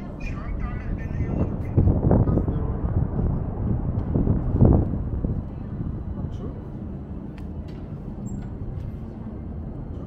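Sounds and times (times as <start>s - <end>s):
distant city traffic: 0.0s - 10.0s
wind rumble: 0.0s - 10.0s.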